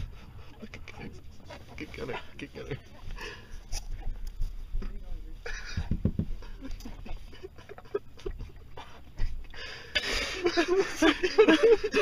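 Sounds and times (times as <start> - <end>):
people panting: 0.0 - 4.7, 5.4 - 12.0
people wheezing laughter: 5.4 - 12.0.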